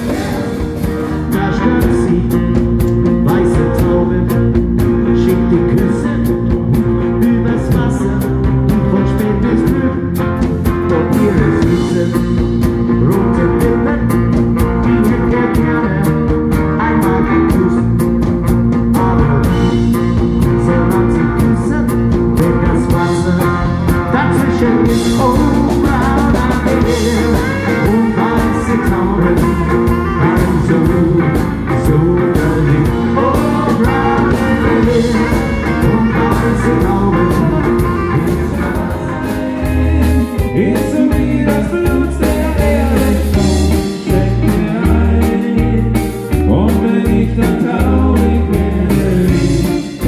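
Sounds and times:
drum kit: 0:00.0 - 0:50.0
electric bass: 0:00.0 - 0:50.0
live rock band playing: 0:00.0 - 0:50.0.

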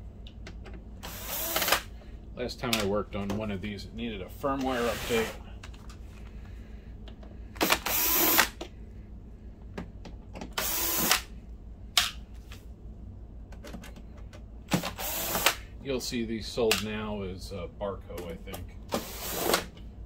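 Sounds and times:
cordless drill running: 0:01.0 - 0:01.9, 0:04.8 - 0:05.4, 0:07.6 - 0:08.6, 0:10.6 - 0:11.2, 0:14.8 - 0:15.6, 0:19.0 - 0:19.7.

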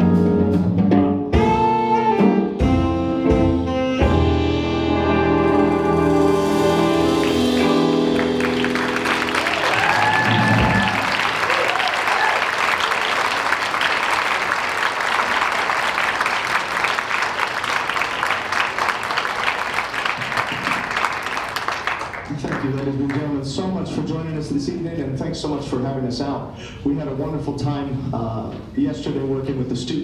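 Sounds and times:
jazz band held chord: 0:00.0 - 0:11.6
audience applauding: 0:06.0 - 0:23.3.

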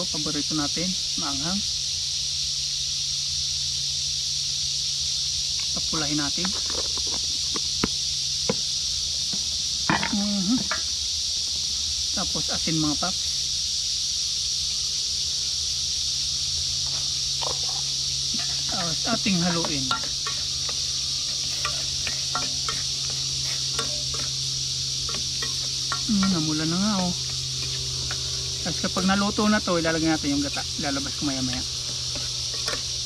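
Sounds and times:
insects droning: 0:00.0 - 0:33.0
metal ladle stirring in pot: 0:18.4 - 0:33.0.

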